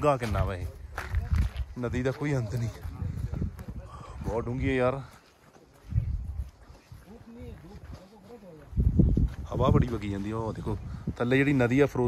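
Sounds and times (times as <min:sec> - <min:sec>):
wind buffeting microphone: 0:00.0 - 0:05.1, 0:05.8 - 0:12.0
faint voices: 0:00.0 - 0:10.6.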